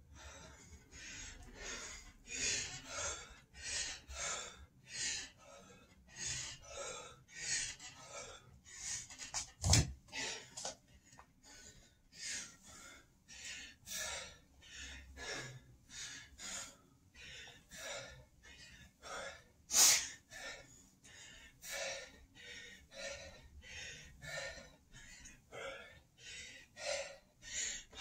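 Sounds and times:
man breathing hard: 0:00.0 - 0:09.4, 0:10.1 - 0:28.0.

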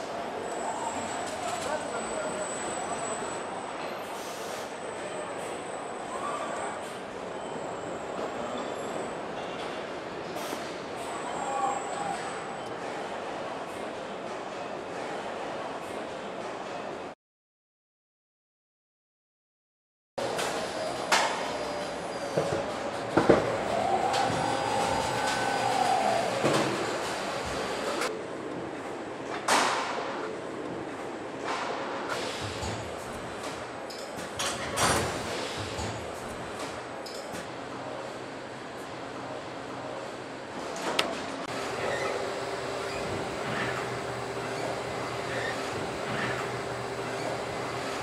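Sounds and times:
machinery hum with high whine: 0:20.2 - 0:48.0
machinery humming: 0:23.1 - 0:28.1, 0:41.5 - 0:48.0.

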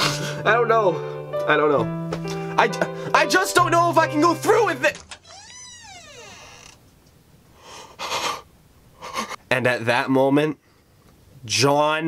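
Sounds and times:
door creaking open: 0:04.9 - 0:06.9.

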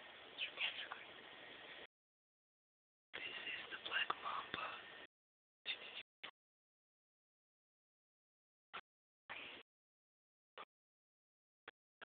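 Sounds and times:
person whispering: 0:00.4 - 0:01.1, 0:03.2 - 0:04.9, 0:05.7 - 0:06.1.

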